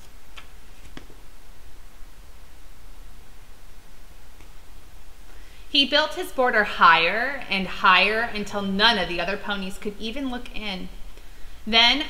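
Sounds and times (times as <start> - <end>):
book pages turning: 0.0 - 1.2
steady low hum: 0.0 - 12.0.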